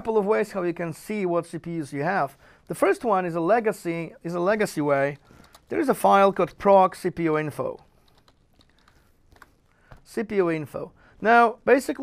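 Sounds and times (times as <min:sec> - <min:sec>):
computer keyboard typing: 0:05.1 - 0:05.8, 0:07.6 - 0:09.6.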